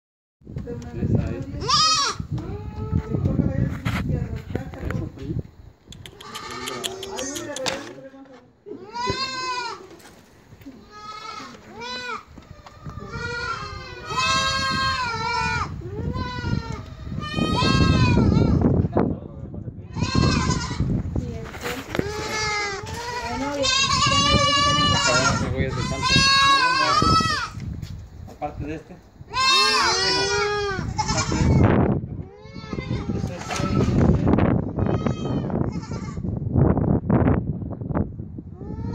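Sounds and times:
goat kids bleating: 1.6 - 3.2, 6.1 - 7.8, 8.8 - 18.8, 19.9 - 21.0, 21.9 - 27.7, 29.3 - 36.3, 38.6 - 38.9.

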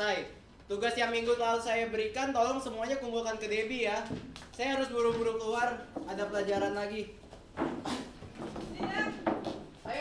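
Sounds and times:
chairs and feet scraping: 5.0 - 10.0.

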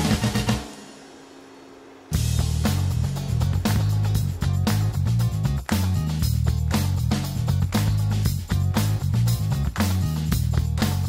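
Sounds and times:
music with drum beat and heavy bass: 0.0 - 1.2, 2.1 - 11.0.

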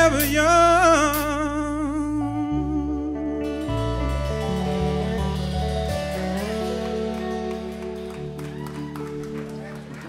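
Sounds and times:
electric bass notes: 0.0 - 10.0
electric guitar chords: 0.0 - 10.0
keyboard chords: 0.0 - 10.0.

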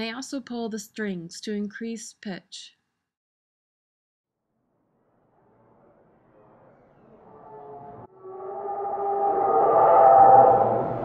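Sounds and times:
droning pitched mechanical call: 7.2 - 11.0.

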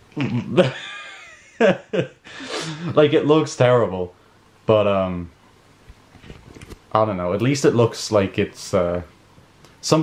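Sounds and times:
man laughing: 0.2 - 3.3.

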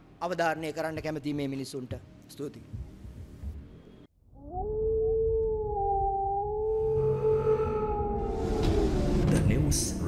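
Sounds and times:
wolf howl: 4.4 - 9.4.

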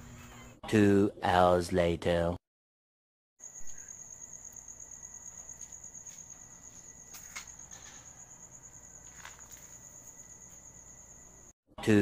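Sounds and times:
crickets chirping: 3.4 - 11.6.

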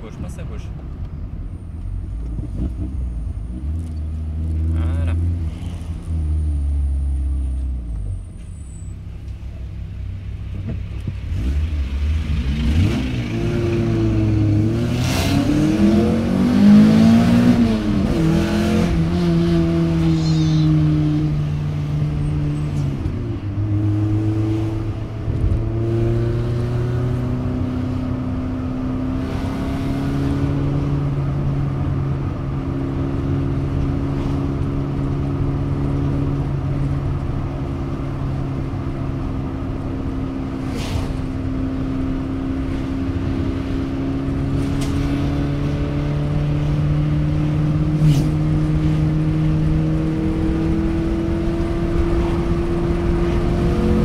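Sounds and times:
car engine accelerating: 1.6 - 54.0.

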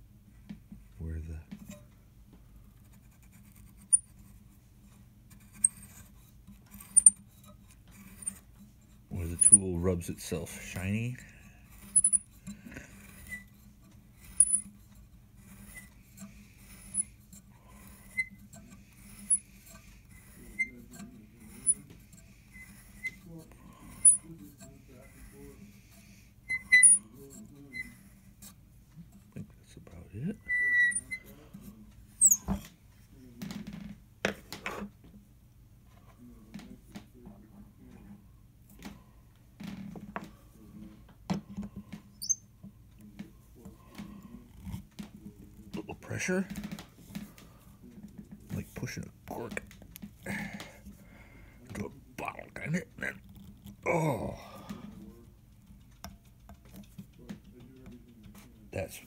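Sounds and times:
tool squeaking against wood: 3.8 - 4.1, 6.7 - 8.5, 9.1 - 10.8, 11.7 - 13.6, 14.2 - 25.4, 26.4 - 28.1, 30.3 - 31.3, 32.2 - 32.6, 42.1 - 42.5
brief squeal: 30.4 - 31.2, 32.2 - 32.4, 42.2 - 42.4.

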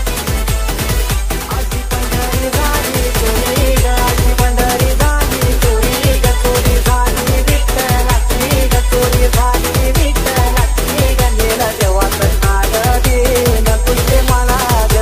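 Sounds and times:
background music with fast beat: 0.0 - 15.0.

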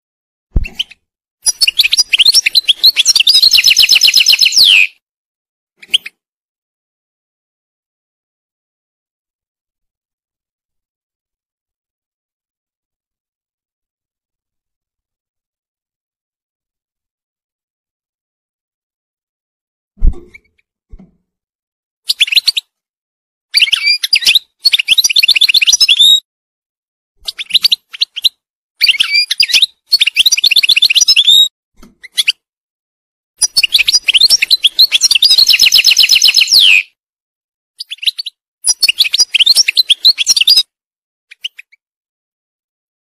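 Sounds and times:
goldfinch twittering song: 0.6 - 5.0, 22.1 - 22.7, 23.5 - 26.2, 27.3 - 31.5, 33.4 - 36.9, 37.8 - 40.7.

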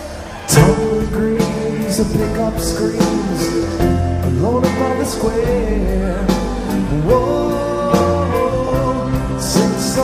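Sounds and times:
bass guitar: 0.0 - 10.0
sliding electric guitar melody: 0.0 - 10.0.

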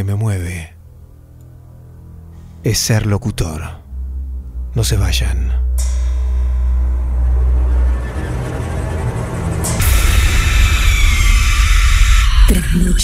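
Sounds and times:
deep low drone: 0.8 - 13.0
bright whooshing swell: 5.7 - 11.7.

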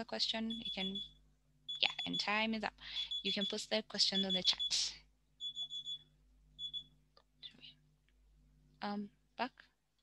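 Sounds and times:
high alarm beeps: 0.5 - 7.0.

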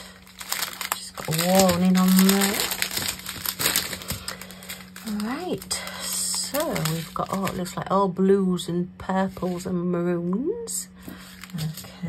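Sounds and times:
plastic bags crinkling: 0.0 - 8.0, 11.0 - 12.0.

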